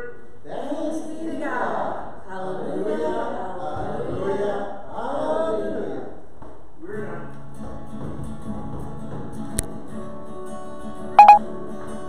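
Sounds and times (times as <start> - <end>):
short loud electronic beeps: 11.2 - 11.4.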